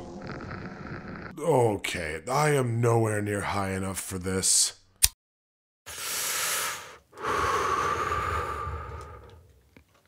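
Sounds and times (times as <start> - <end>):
person inhaling smoke: 5.9 - 9.4
rough breath with low rumble: 6.0 - 9.6.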